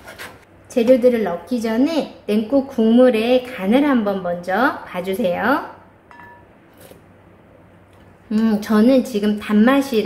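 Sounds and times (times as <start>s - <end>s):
wooden spoon clinking glass bowl: 6.1s - 6.5s.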